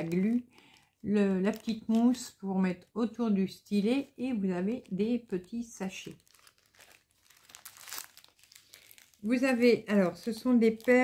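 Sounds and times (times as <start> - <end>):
plastic bags crinkling: 0.0 - 2.4, 3.8 - 11.0.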